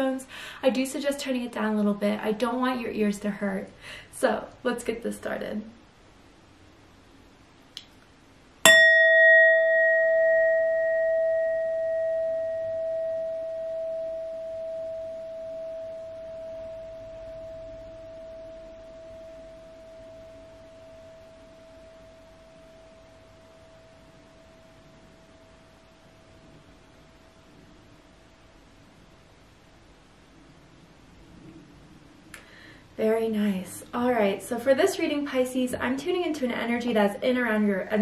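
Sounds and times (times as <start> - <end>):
singing bowl ringing: 8.6 - 27.2.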